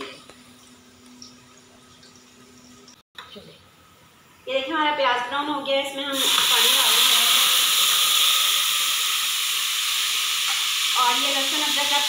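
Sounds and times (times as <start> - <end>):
water hissing in hot oil: 6.1 - 12.0.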